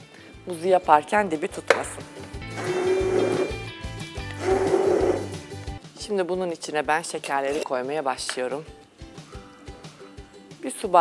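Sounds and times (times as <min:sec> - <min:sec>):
background music: 0:00.0 - 0:11.0
stick blender running: 0:02.5 - 0:03.6, 0:04.4 - 0:05.3.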